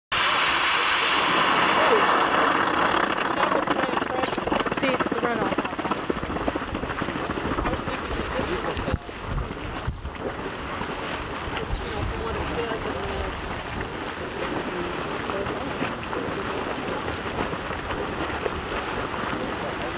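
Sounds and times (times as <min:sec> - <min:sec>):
geyser vent splashing and hissing: 0:00.1 - 0:19.9.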